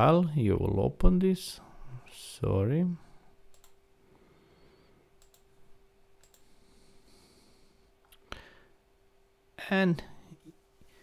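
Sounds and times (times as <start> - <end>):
low steady hum: 0.0 - 11.0
computer mouse clicks: 3.5 - 3.8, 5.2 - 5.5, 6.2 - 6.5.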